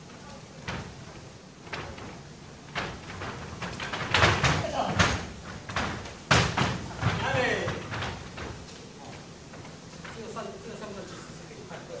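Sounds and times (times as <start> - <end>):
bare feet stamping on wooden floor: 0.6 - 10.3.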